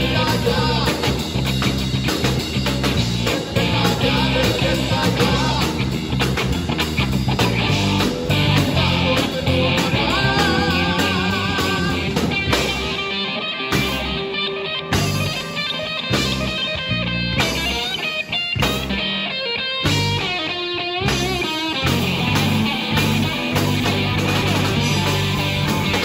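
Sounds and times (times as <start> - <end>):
drum kit: 0.0 - 26.0
electric bass: 0.0 - 26.0
electric guitar: 0.0 - 26.0.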